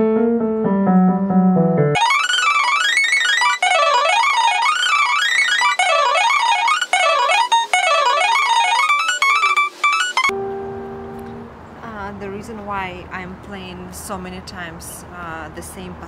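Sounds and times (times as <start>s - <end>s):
digital piano fast runs: 0.0s - 11.0s.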